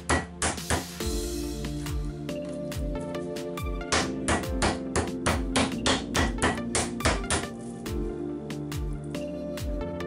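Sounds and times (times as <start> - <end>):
meat mallet pounding on wood: 0.0 - 0.9, 3.8 - 7.5
background music: 0.0 - 10.0.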